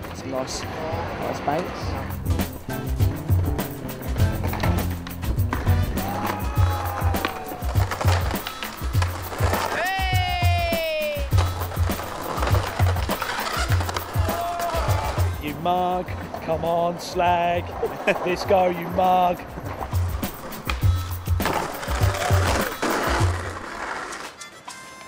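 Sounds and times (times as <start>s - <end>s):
skateboard wheels rolling on concrete: 0.0s - 25.0s
music with bass beat: 1.9s - 15.4s, 19.5s - 23.5s
skateboard knocking on ground: 4.1s - 15.2s, 19.6s - 24.4s.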